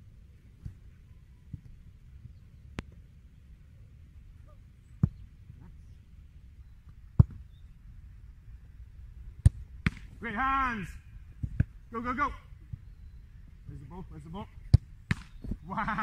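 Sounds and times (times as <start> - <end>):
low steady rumble: 0.0 - 15.9
football being kicked: 5.0 - 5.2, 7.1 - 7.5, 9.4 - 10.2, 11.4 - 11.8, 14.6 - 16.0.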